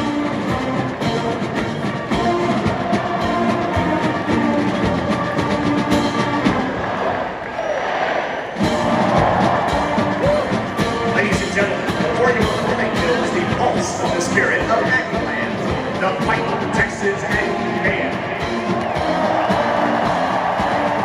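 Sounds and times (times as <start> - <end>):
military marching band playing: 0.0 - 7.2, 8.6 - 21.0.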